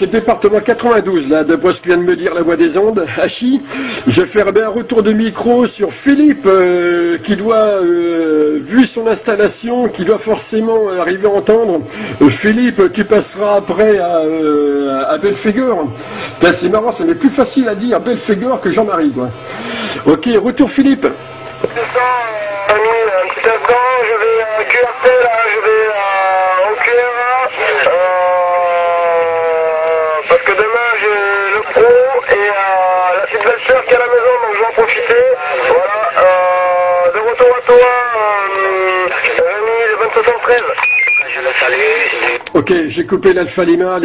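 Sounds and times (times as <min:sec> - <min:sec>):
voice over radio receiver: 0:20.3 - 0:42.4.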